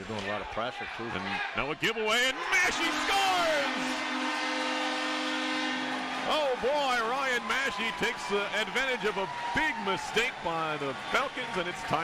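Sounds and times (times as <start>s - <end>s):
goal horn blowing long note: 2.3s - 9.1s.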